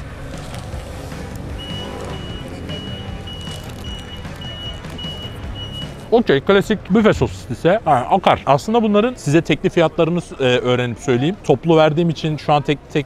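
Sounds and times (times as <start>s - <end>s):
street traffic rumble: 0.0s - 13.0s
vehicle reversing alarm beeping: 1.5s - 6.2s.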